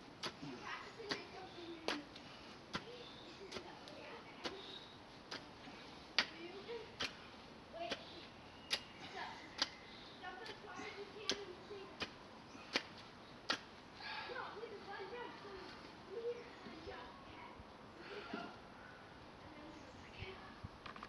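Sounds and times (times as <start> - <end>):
garden hoe striking soil: 0.2 - 5.5, 6.1 - 8.9, 10.4 - 12.9.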